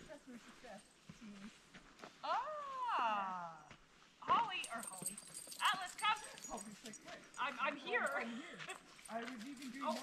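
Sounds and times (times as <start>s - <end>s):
indistinct group talk: 4.3s - 10.0s.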